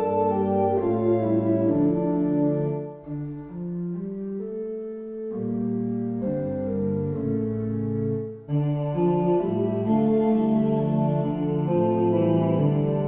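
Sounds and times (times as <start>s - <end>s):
organ playing held chords: 0.0s - 13.0s.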